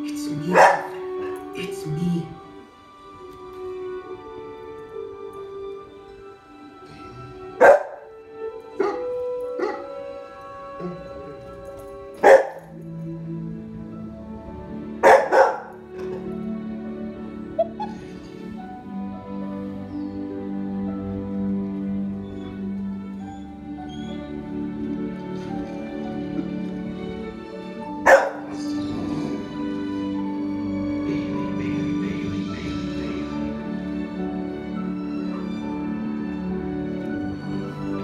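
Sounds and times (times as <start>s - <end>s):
soft film music: 0.0s - 38.0s
puppy barking: 0.5s - 1.1s, 7.6s - 8.2s, 8.8s - 10.0s, 12.2s - 12.8s, 15.0s - 15.8s, 17.6s - 18.1s, 28.0s - 28.7s.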